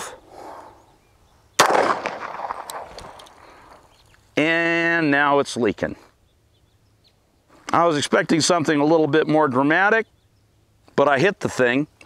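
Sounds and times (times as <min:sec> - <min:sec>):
pistol shot: 0:01.6 - 0:03.2.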